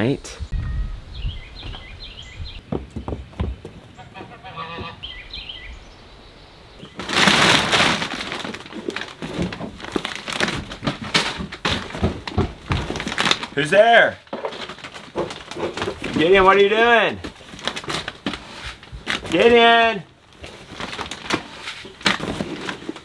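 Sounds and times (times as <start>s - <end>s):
birds chirping: 0.0s - 7.2s
plastic sacks rustling: 6.8s - 23.0s.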